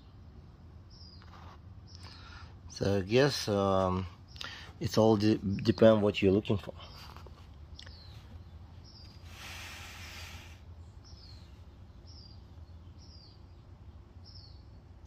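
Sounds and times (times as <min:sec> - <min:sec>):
bird chirping: 0:00.0 - 0:15.0
brief hiss: 0:09.2 - 0:10.7.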